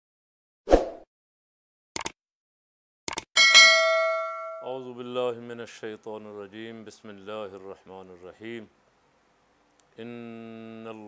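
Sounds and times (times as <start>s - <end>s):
short clicks: 2.0s - 2.2s, 3.1s - 3.3s
bright bell chime: 3.4s - 4.8s.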